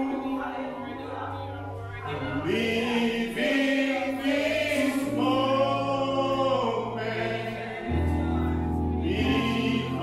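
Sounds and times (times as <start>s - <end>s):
voices singing along: 2.0s - 10.0s
man singing into microphone: 4.7s - 10.0s.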